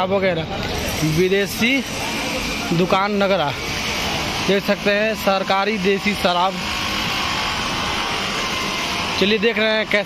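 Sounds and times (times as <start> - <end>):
busy market street din: 0.0 - 10.0.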